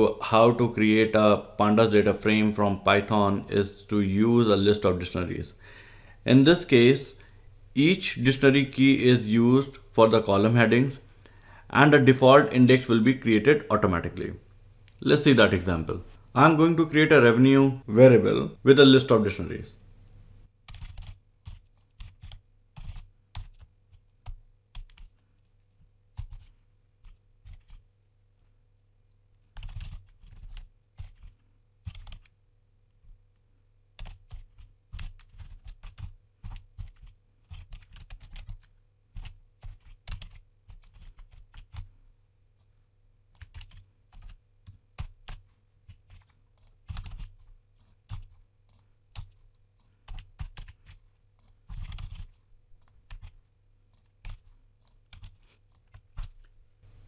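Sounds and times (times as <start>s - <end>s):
typing on computer keyboard: 20.6s - 25.2s, 26.1s - 27.9s, 29.4s - 32.4s, 34.0s - 41.9s, 43.3s - 56.5s.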